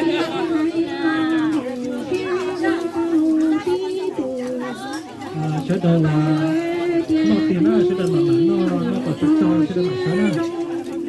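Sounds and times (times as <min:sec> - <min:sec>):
chatter: 0:00.0 - 0:11.0
children's voices: 0:00.0 - 0:11.0.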